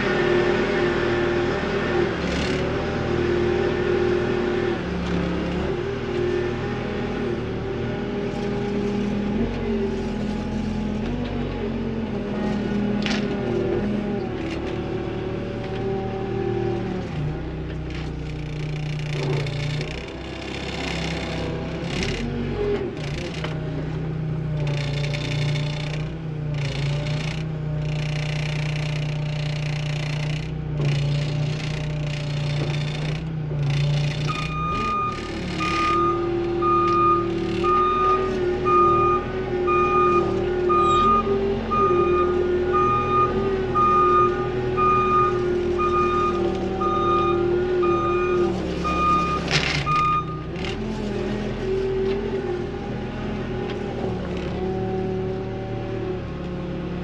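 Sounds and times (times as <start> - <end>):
loader engine running: 0.0 - 57.0
backup alarm beeping: 34.3 - 50.5.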